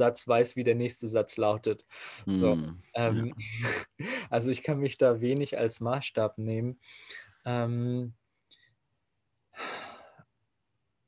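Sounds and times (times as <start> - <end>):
man sighing: 9.6 - 10.1.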